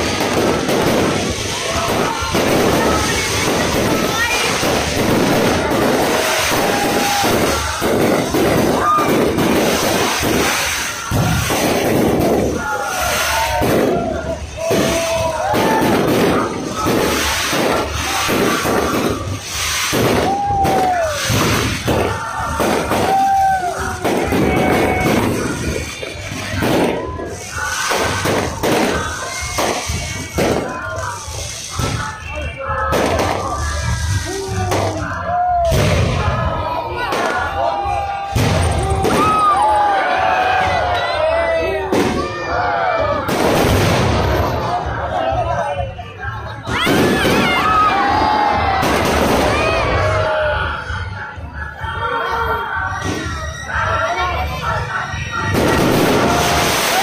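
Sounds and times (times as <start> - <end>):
fireworks bangs and thuds: 0.0 - 51.1, 52.9 - 53.5, 54.7 - 57.0
crowd exclaiming: 0.0 - 57.0.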